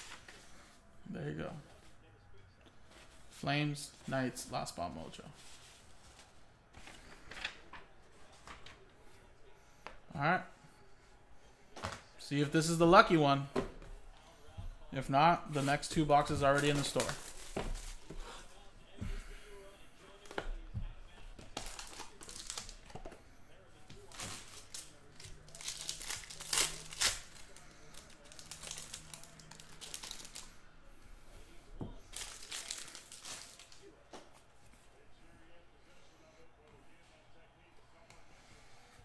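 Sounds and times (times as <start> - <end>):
plastic wrap crinkling: 24.1 - 30.5, 32.1 - 33.8
plastic wrap tearing: 24.1 - 30.5.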